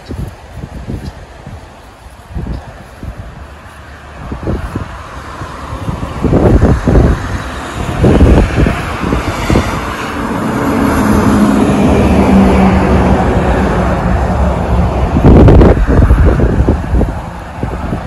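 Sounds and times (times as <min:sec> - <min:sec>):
vehicle engine hum: 0:00.0 - 0:18.0
wind buffeting microphone: 0:00.0 - 0:18.0.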